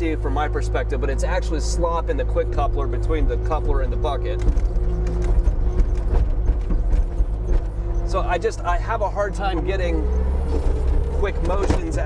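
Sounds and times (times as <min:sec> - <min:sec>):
diesel engine running: 0:00.0 - 0:12.0.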